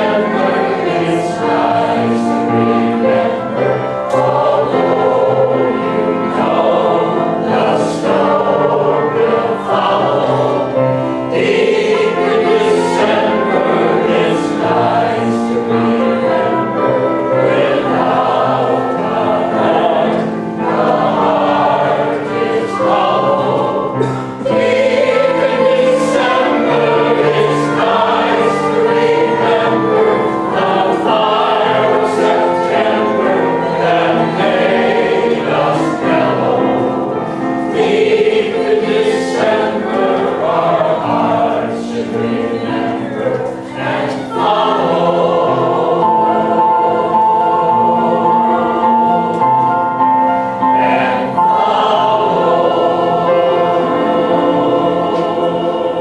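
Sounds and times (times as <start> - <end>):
mixed choir singing in harmony: 0.0 - 56.0.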